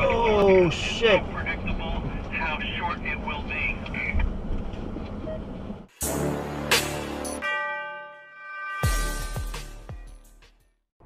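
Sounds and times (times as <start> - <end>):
car road noise: 0.0 - 5.9.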